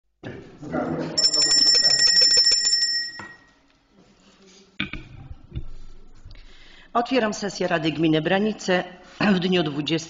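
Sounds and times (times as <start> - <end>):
bell rung rapidly: 1.2 - 3.5.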